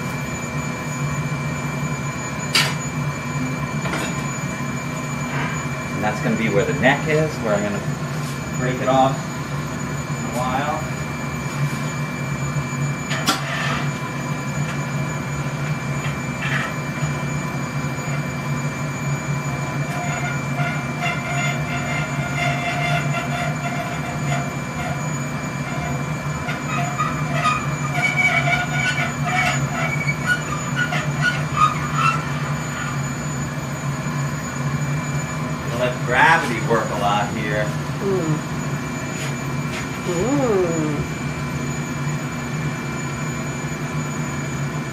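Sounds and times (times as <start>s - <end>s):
furnace roaring: 0.0s - 44.9s
blowpipe squeaking: 16.0s - 33.3s.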